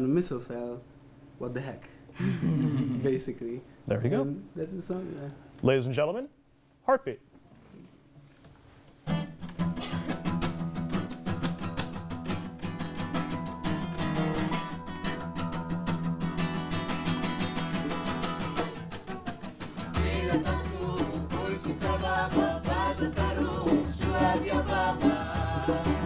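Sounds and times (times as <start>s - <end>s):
strummed acoustic guitar: 9.0s - 26.0s
hand drum: 9.3s - 26.0s
group singing: 19.6s - 26.0s.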